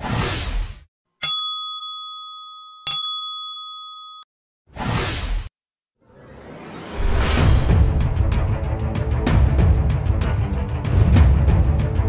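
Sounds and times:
bright ding chimes: 1.2 - 4.3.

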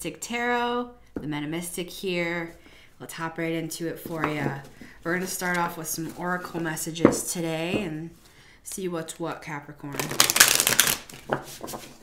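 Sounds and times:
cards riffle-shuffled by hand: 10.0 - 12.0.

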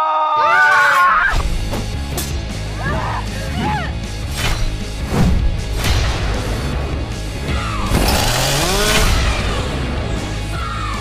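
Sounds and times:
heavy trailer music: 1.3 - 11.0
motor revving whine: 7.8 - 9.9.

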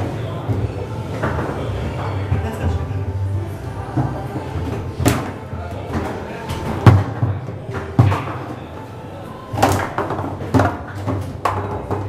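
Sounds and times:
foosball rods clacking: 3.9 - 8.9, 9.5 - 12.0.

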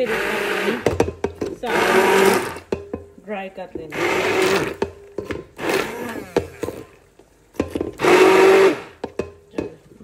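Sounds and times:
immersion blender grinding: 0.0 - 1.0, 1.6 - 2.7, 3.9 - 4.8, 5.6 - 6.9, 8.0 - 9.0.

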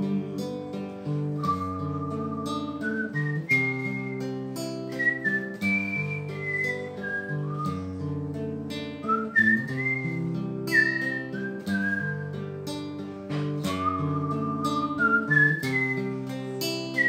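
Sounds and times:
fingerpicked acoustic guitar: 0.0 - 17.0
man whistling a melody: 0.0 - 17.0.

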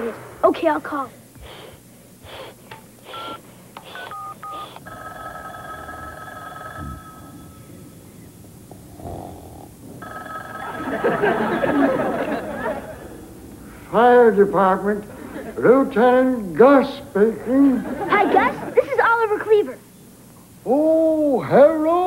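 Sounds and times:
noise: 0.0 - 22.0
touch-tone dialing beeps: 3.1 - 7.2
telephone ringing: 4.0 - 8.2, 10.0 - 12.4.

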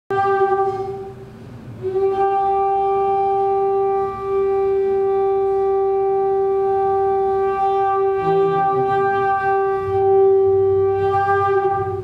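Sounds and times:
conch shell blown: 0.1 - 12.0.

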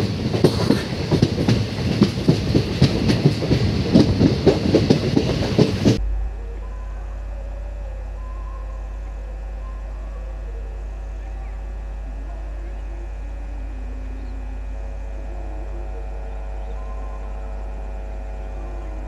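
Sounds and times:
wheels clicking over rails: 0.0 - 6.0
train passing at speed: 0.0 - 9.2
low steady hum: 5.9 - 19.0.

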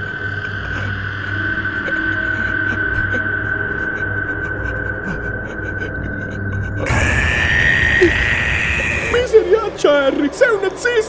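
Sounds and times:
shrill held tone: 6.8 - 9.8.

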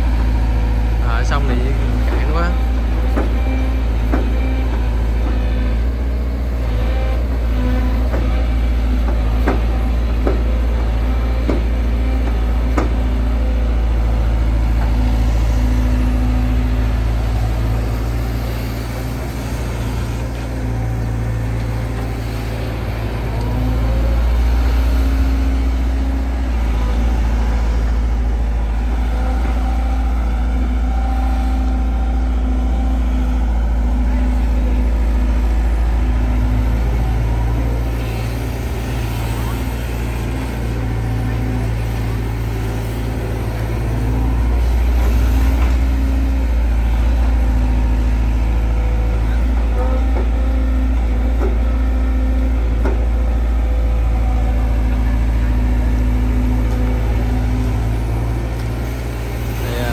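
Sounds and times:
excavator diesel engine droning: 0.0 - 59.9.

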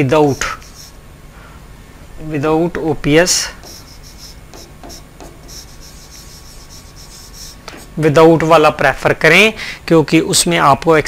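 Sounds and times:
pen strokes on glass screen: 0.3 - 1.0, 3.6 - 7.9.

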